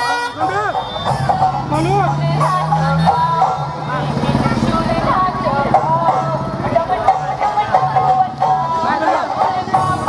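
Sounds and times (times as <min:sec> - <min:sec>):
voices singing sliding melody: 0:00.0 - 0:10.0.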